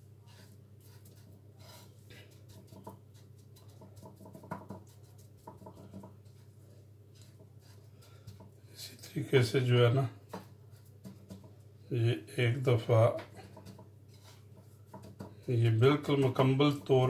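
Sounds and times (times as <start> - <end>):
breadcrumbs rustling: 0.0 - 11.9, 12.8 - 16.8.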